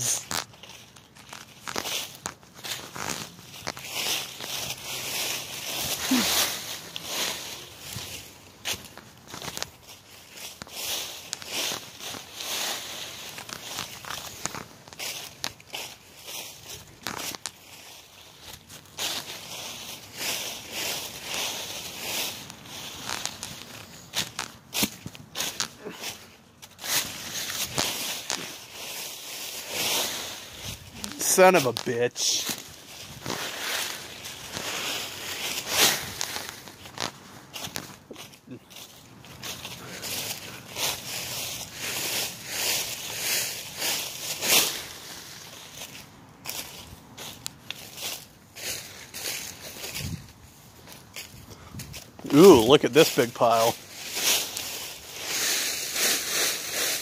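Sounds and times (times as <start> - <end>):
footsteps through dry leaves: 0.0 - 57.0.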